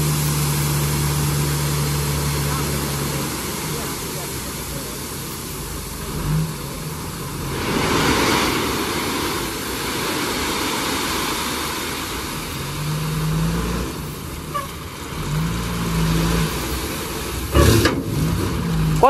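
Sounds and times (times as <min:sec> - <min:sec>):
diesel truck engine revving: 0:00.0 - 0:19.0
gravel sliding off truck bed: 0:00.0 - 0:19.0.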